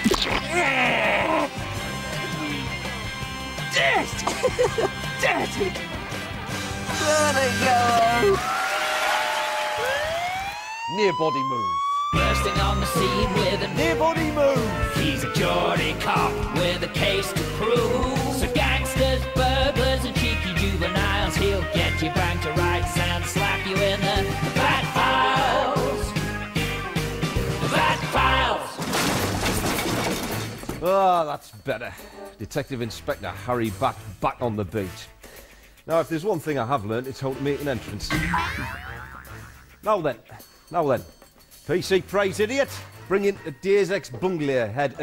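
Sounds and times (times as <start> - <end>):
jingle-style theme song: 1.6 - 8.4, 12.0 - 28.8, 36.6 - 45.0
police siren rising tone: 9.5 - 16.5
glass shattering: 28.8 - 30.9.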